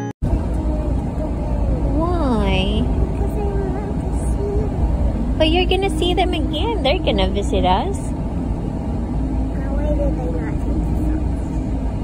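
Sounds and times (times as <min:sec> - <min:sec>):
car rumble from inside cabin: 0:00.2 - 0:12.0.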